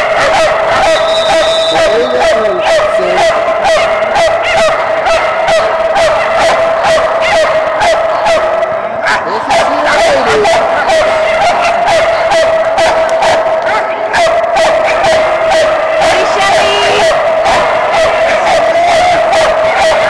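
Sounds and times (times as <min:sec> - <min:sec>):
dogs barking and yipping: 0:00.0 - 0:20.0.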